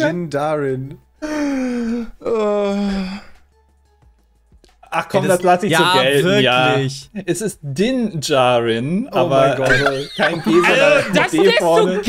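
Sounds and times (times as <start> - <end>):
man moaning long vowels: 1.3 - 3.2.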